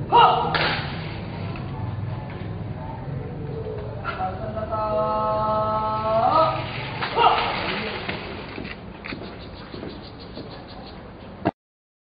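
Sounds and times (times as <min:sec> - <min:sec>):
person shouting commands: 0:00.0 - 0:00.6, 0:04.8 - 0:07.7.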